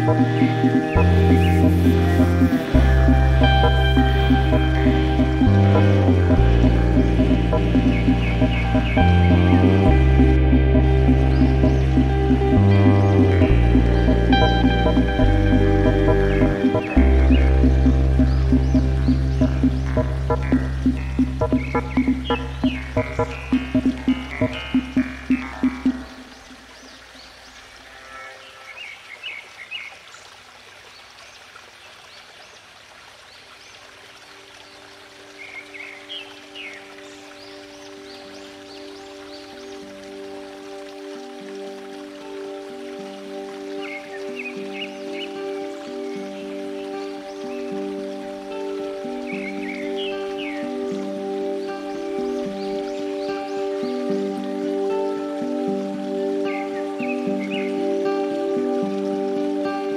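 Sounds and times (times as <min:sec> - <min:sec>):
slow soft instrumental tune: 0:00.0 - 0:26.5, 0:34.6 - 0:59.9
running water: 0:00.0 - 0:59.9
bird chirps: 0:07.0 - 0:10.0, 0:16.4 - 0:27.0.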